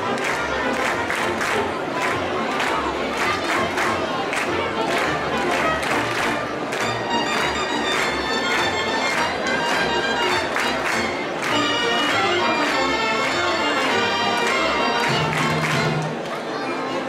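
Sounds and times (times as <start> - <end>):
crowd of children: 0.0 - 17.0
reedy wind instruments: 3.9 - 17.0.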